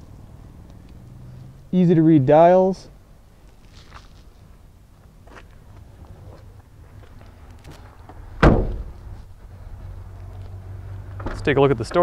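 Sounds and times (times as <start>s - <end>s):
car door shutting: 8.4s - 9.0s.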